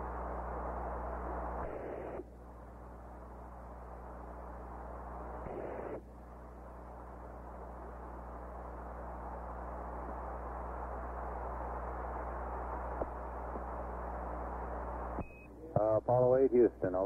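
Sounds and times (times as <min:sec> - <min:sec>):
radio static hiss: 0:00.0 - 0:17.0.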